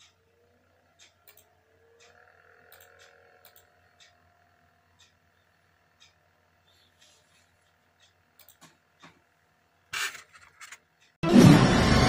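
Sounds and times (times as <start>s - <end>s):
faint clock ticking: 0.0s - 9.9s, 10.8s - 11.2s
quick pairs of clicks: 1.0s - 4.2s, 8.0s - 9.2s.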